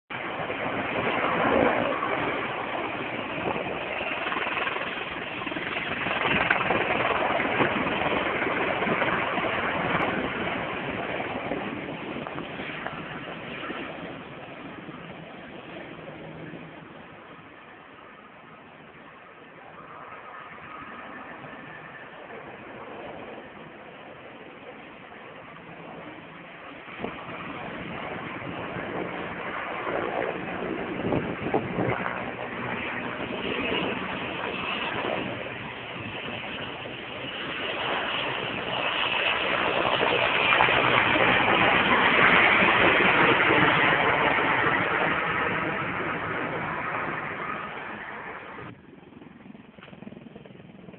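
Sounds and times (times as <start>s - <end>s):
helicopter rotor and turbine noise: 0.0s - 50.9s
distant aircraft engines droning: 0.1s - 50.9s.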